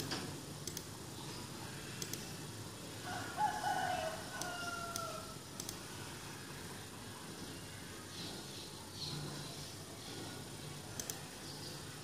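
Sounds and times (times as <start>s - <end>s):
rooster crowing: 3.0s - 5.4s.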